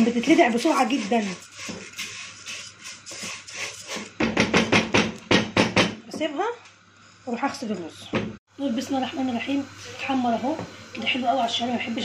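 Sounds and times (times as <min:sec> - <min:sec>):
vermicelli sizzling in ghee: 0:00.0 - 0:04.3, 0:07.2 - 0:12.0
spatula scraping pot: 0:00.0 - 0:04.9.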